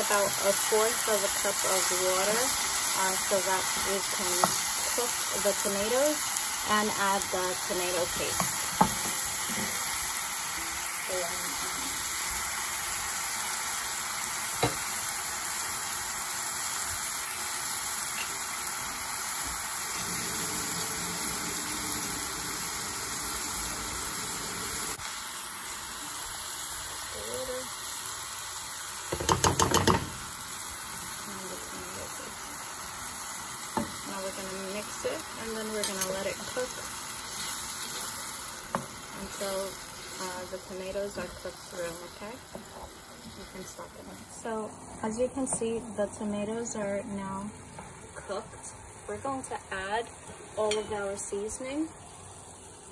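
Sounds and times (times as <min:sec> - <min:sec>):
vegetables sizzling in a pan: 0:00.0 - 0:52.9.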